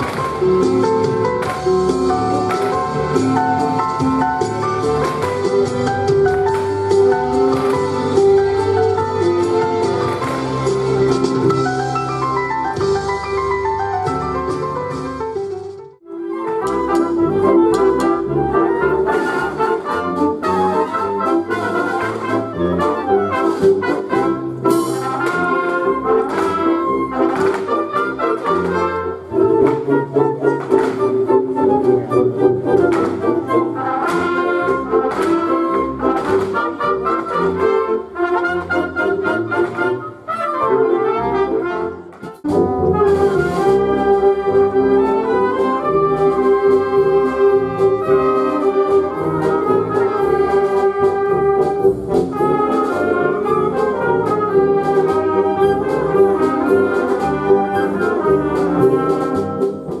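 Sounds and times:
wind band playing: 0.0s - 60.0s.

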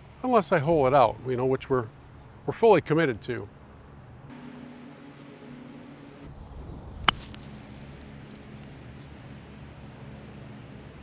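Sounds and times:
golf club striking ball: 7.0s - 7.8s.

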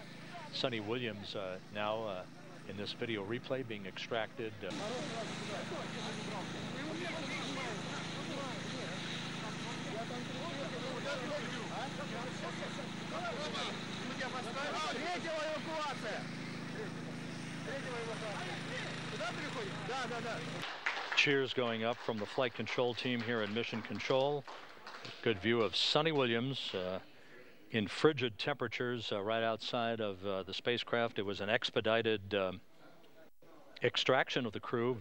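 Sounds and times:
overlapping voices talking: 0.0s - 26.6s.

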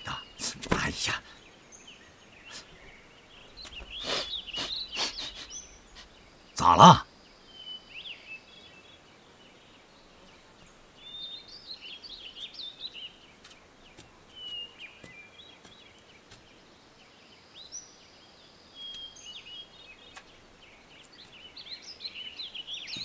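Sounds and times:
birds chirping: 0.0s - 23.0s
outdoor ambience: 0.0s - 23.0s.

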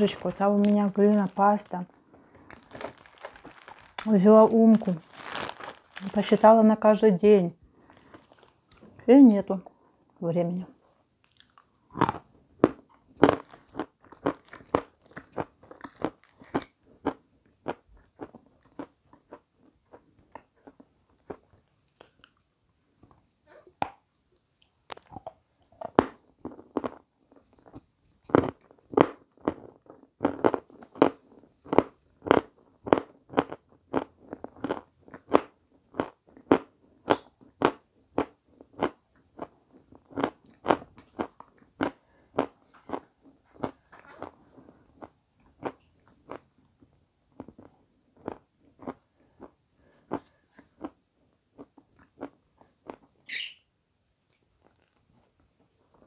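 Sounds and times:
person chewing food: 0.0s - 4.1s, 5.0s - 6.2s, 7.6s - 10.2s, 10.8s - 53.2s, 54.2s - 56.0s.

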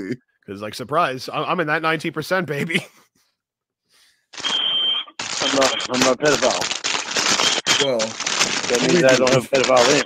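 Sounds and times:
high-pitched electronic beep: 4.4s - 6.0s, 7.4s - 8.0s.

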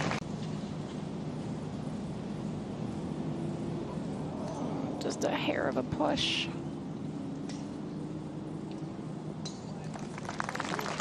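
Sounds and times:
gallery applauding: 9.9s - 11.0s.

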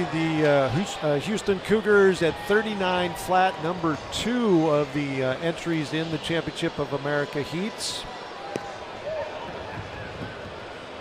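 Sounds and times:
murmur of stadium crowd: 0.0s - 11.0s.

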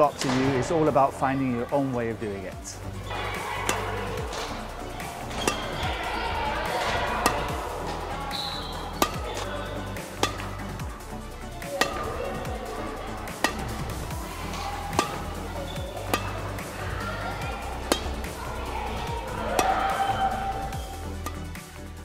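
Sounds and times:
background music: 0.0s - 22.0s
badminton racket hitting shuttlecock: 3.0s - 21.6s.

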